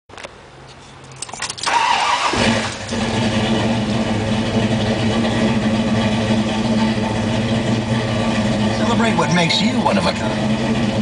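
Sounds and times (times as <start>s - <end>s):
car engine idling: 1.0s - 11.0s
car starter cranking: 1.1s - 9.1s.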